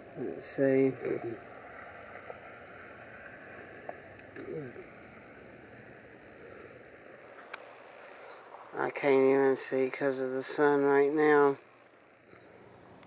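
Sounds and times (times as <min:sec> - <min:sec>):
outdoor background hiss: 0:00.0 - 0:13.0.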